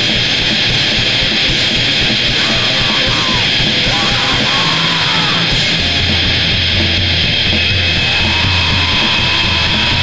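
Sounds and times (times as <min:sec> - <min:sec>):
distorted punk band playing: 0:00.0 - 0:10.0.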